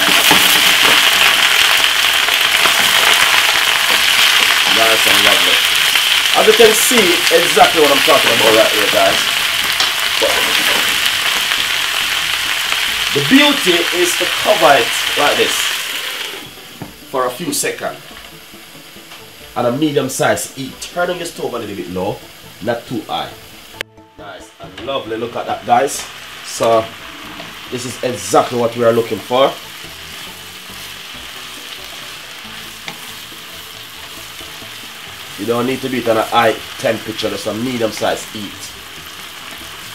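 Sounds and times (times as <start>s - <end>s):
vegetables sizzling in a frying pan: 0.0s - 39.9s.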